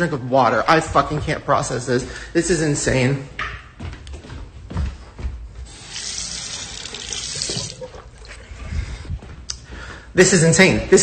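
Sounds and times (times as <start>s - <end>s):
water running from a tap: 5.7s - 8.5s.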